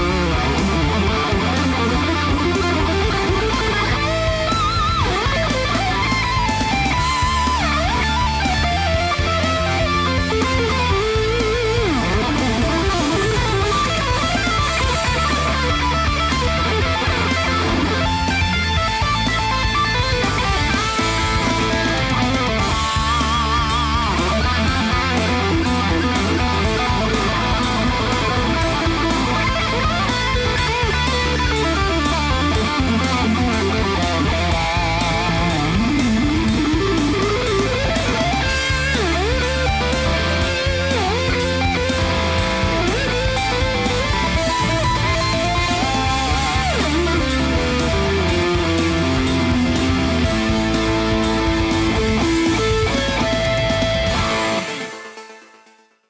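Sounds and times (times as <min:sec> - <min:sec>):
electric guitar metal lead: 0:00.0 - 0:56.0.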